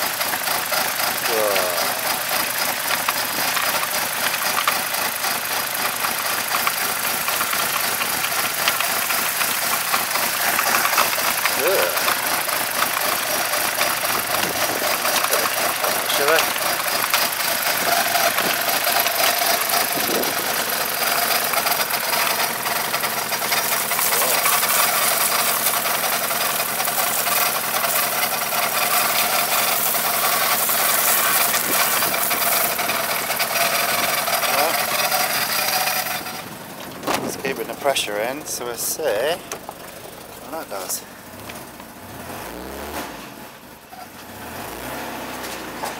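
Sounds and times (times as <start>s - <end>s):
car engine running: 0.0s - 45.9s
hose water splashing: 6.8s - 36.0s.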